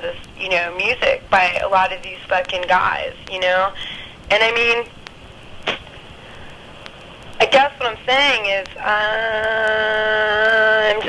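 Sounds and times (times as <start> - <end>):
telephone line hiss: 0.0 - 11.0.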